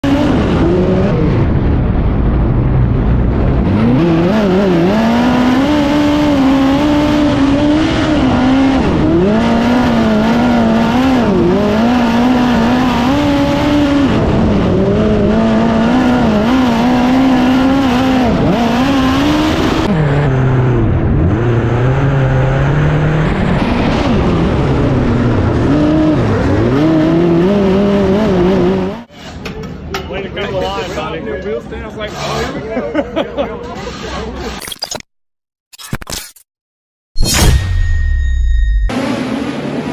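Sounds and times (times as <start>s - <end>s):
race car engine revving: 2.9s - 29.1s.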